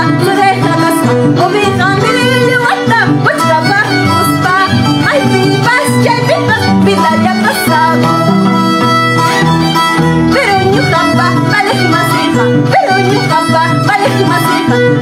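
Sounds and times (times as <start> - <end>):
violin melody: 0.0 - 15.0.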